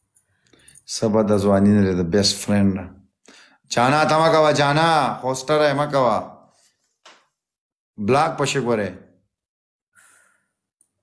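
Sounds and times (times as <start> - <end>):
person exhaling: 10.0 - 10.6.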